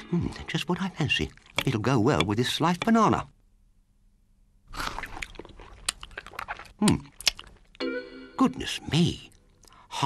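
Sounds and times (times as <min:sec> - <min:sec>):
crunchy chewing: 0:04.7 - 0:07.8.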